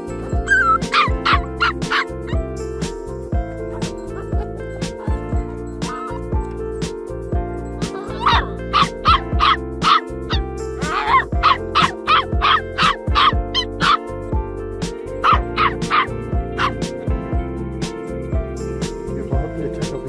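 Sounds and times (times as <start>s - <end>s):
background music with steady beat: 0.0s - 20.0s
puppy yapping: 0.4s - 2.4s, 7.9s - 14.1s, 15.2s - 16.8s.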